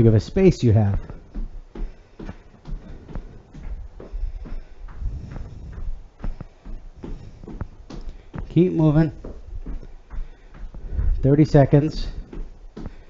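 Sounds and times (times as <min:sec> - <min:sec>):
footsteps on hardwood floor: 0:00.0 - 0:13.0.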